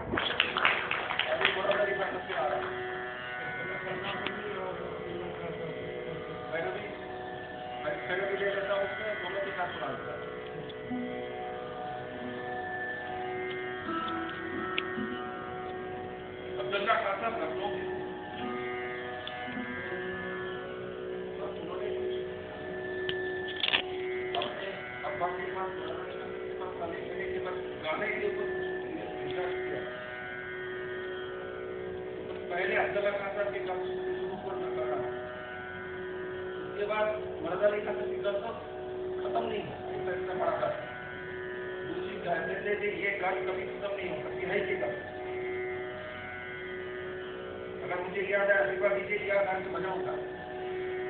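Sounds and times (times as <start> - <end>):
sarod and tabla music: 0.0 - 51.0
steady drone: 0.0 - 51.0
man talking: 1.2 - 2.8, 3.4 - 7.1, 24.4 - 29.9, 41.9 - 45.1, 47.8 - 50.4.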